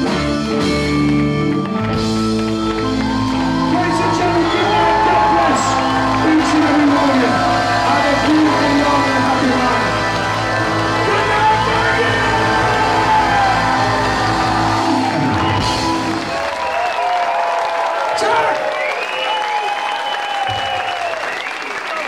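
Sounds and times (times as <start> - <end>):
crowd cheering and clapping: 0.0 - 22.0.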